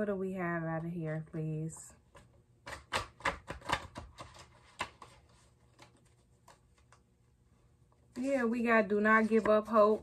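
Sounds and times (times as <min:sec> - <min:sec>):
cards clicking on a table: 0:02.1 - 0:05.2.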